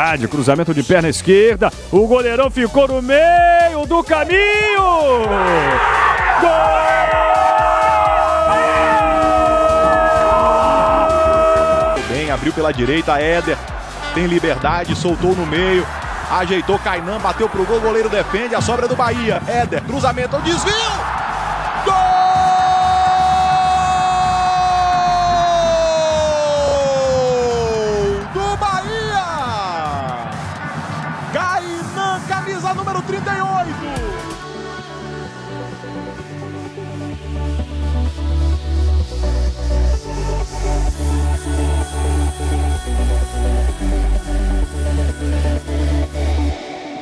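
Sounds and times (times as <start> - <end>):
excited commentary: 0.0 - 30.4, 31.3 - 34.2
background music: 0.0 - 47.0
commentator shouting goal: 2.2 - 21.1, 21.8 - 30.4
stadium crowd noise: 4.0 - 34.5
commentator's long goal cry: 5.2 - 12.1.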